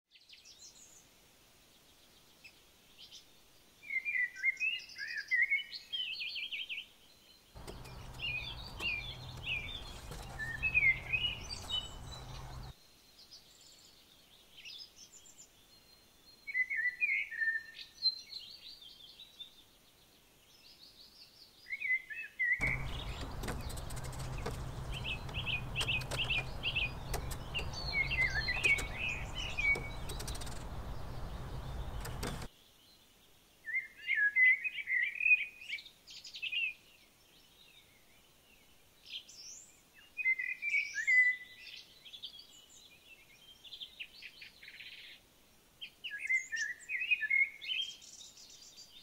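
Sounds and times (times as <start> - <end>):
songbirds chirping and trilling: 0.1 - 49.0
low hum with rushing noise: 22.6 - 32.5.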